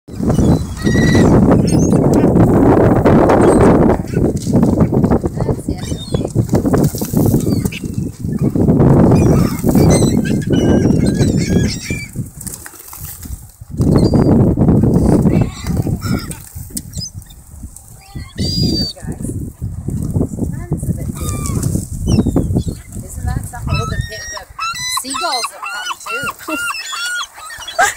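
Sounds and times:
high bird calls: 0.1s - 2.1s, 9.1s - 12.1s, 18.0s - 19.0s, 23.6s - 27.9s
bird wings flapping: 6.0s - 8.3s, 12.1s - 14.1s.

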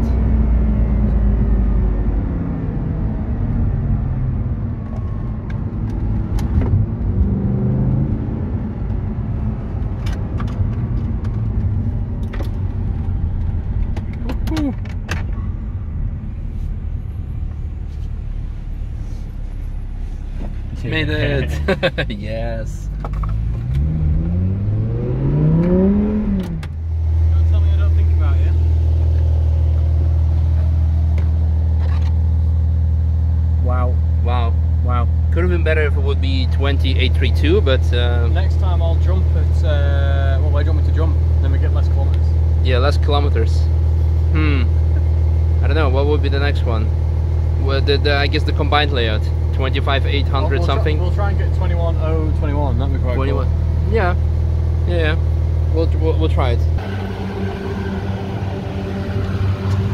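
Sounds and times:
car engine revving in cabin: 0.0s - 19.3s, 23.0s - 32.4s, 49.0s - 59.9s
car engine idling: 8.9s - 23.6s, 26.4s - 59.9s.

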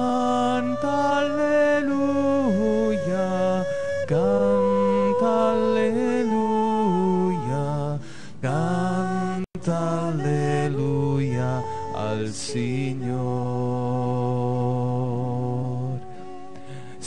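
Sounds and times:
voices singing devotional chant: 0.0s - 16.1s.

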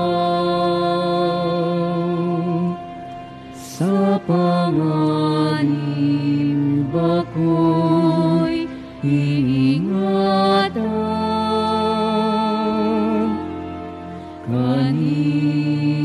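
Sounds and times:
slow hymn singing: 0.0s - 16.0s.

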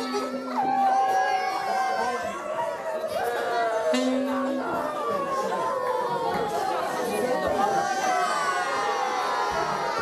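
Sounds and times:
crowd chatter: 0.0s - 10.0s
girls mock wailing and sobbing: 0.0s - 10.0s.

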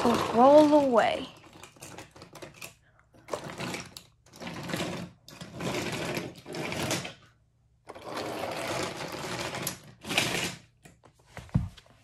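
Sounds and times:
toy train wheels rattling on track: 0.0s - 7.2s, 7.9s - 10.7s.

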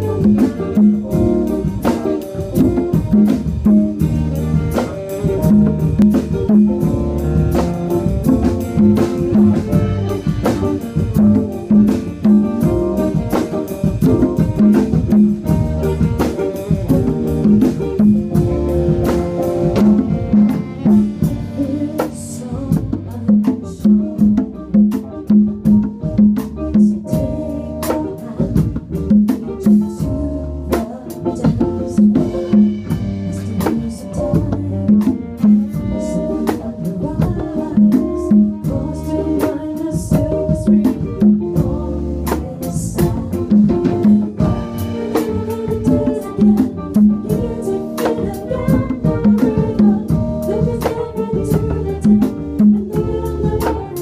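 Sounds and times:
band playing: 0.0s - 54.0s.

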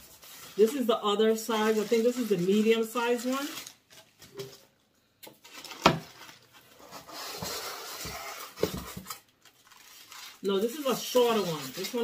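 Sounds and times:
plastic wrapping rustling: 0.0s - 12.0s.

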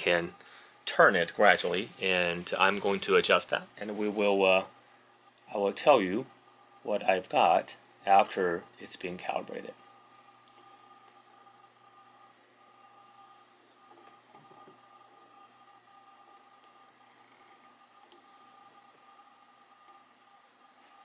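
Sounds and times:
faint steady tones: 0.0s - 21.0s.

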